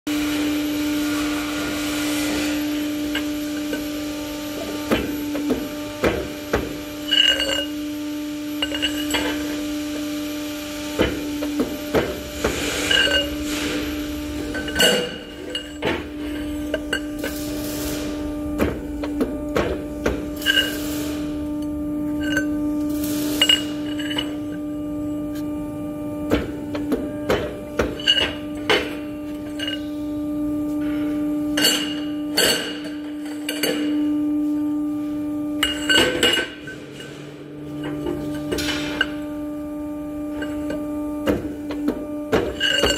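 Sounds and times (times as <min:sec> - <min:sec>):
steady machine hum: 0:00.1 - 0:42.9.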